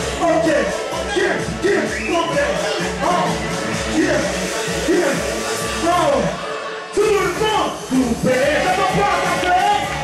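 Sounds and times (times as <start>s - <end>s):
dance music over loudspeakers: 0.0s - 10.0s.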